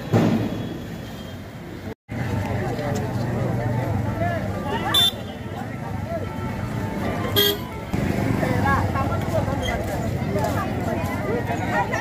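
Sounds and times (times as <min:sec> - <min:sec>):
crowd talking: 0:02.1 - 0:12.0
vehicle horn toot: 0:04.9 - 0:05.4, 0:07.3 - 0:07.7.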